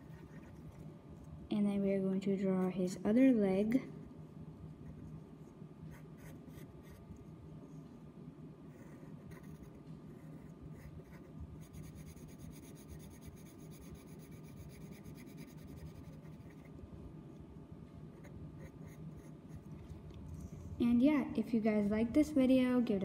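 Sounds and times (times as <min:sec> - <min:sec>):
pencil scratching on paper: 0:00.0 - 0:00.7, 0:08.7 - 0:16.7
faint low hum: 0:00.0 - 0:23.0.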